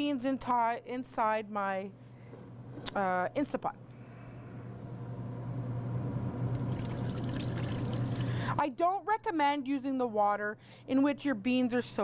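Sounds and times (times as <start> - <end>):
steady low hum: 0.5 - 9.3
water draining into sink: 6.4 - 8.6.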